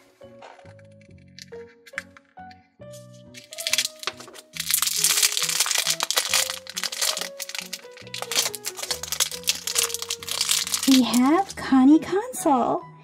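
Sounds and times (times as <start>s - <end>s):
light background music: 0.0s - 13.0s
plastic wrapper crinkling and tearing: 3.3s - 11.6s.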